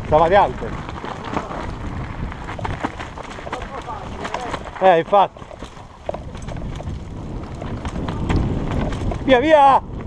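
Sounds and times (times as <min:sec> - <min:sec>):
bike clicking over stones: 0:00.0 - 0:10.0
bike tyre rumble: 0:00.0 - 0:10.0
wind buffeting microphone: 0:00.0 - 0:10.0.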